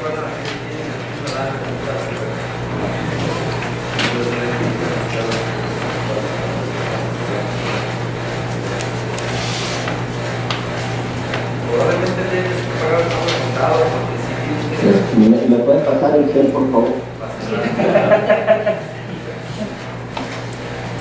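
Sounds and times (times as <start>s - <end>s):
steady low hum: 0.0s - 21.0s
people talking indistinctly: 11.6s - 18.1s.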